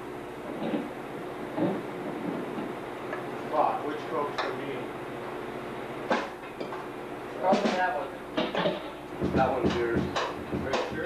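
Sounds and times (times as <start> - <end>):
electrical hum: 0.0 - 11.0
indistinct talk: 7.3 - 11.0
sharp knock: 8.4 - 11.0.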